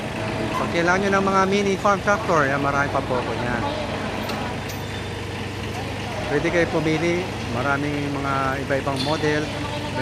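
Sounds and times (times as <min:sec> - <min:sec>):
small diesel engine idling: 0:00.0 - 0:10.0.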